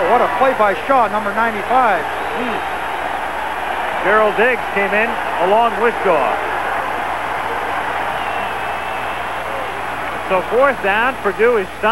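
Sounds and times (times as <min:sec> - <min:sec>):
stadium crowd cheering: 0:00.0 - 0:11.9.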